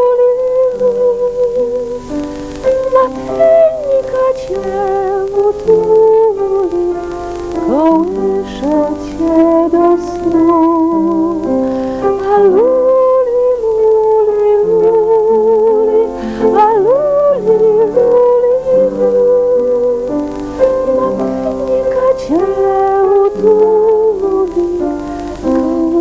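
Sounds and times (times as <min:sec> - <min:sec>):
piano chords: 0:00.0 - 0:26.0
woman singing a lullaby: 0:00.0 - 0:26.0.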